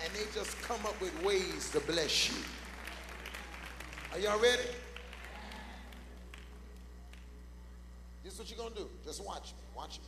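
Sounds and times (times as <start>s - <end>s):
faint congregation room noise: 0.0s - 10.0s
steady low hum: 0.0s - 10.0s.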